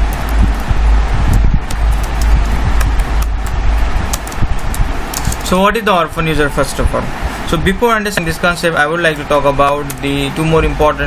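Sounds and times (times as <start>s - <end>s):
low rumble and hiss: 0.0s - 11.0s
keyboard keys clicking: 1.3s - 5.5s.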